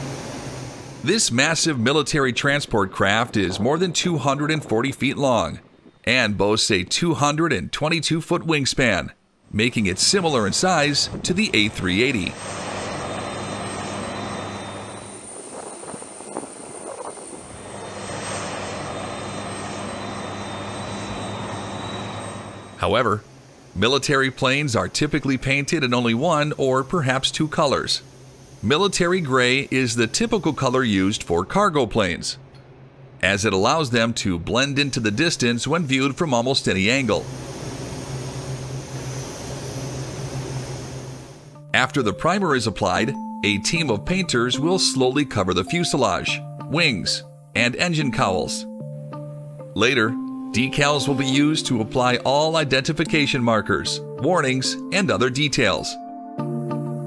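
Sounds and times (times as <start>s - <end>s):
jet engines running with high whine: 0.0s - 4.8s, 9.8s - 41.7s
low even hum: 9.4s - 42.2s
steady air hiss: 23.1s - 25.6s.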